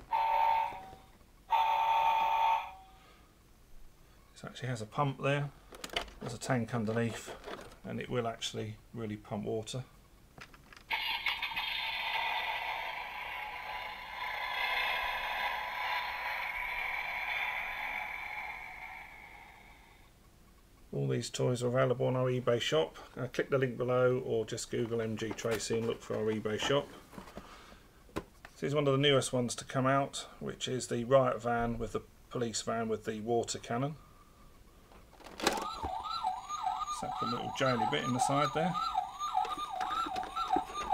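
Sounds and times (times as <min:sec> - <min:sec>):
tinny toy sound effect: 0:10.9 - 0:20.0, 0:35.4 - 0:40.9.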